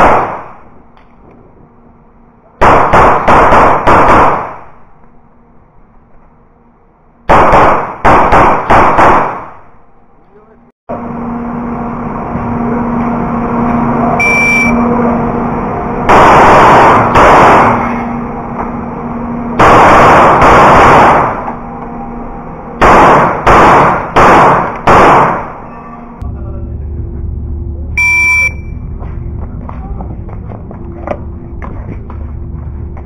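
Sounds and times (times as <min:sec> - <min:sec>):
pistol shots with ringing tail: 0:00.0 - 0:00.7, 0:02.6 - 0:04.8, 0:07.3 - 0:09.8, 0:16.1 - 0:18.1, 0:19.6 - 0:21.5, 0:22.8 - 0:25.7
shot timer beep: 0:14.2 - 0:14.8, 0:28.0 - 0:28.8.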